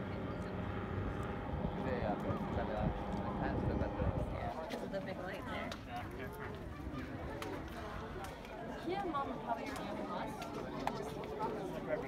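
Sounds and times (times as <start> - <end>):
steady low rumble: 0.0 - 6.8
many people talking: 0.0 - 12.0.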